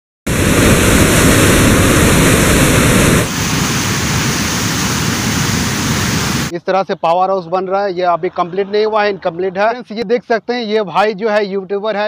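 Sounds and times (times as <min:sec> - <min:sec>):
white water rushing: 0:00.3 - 0:06.5.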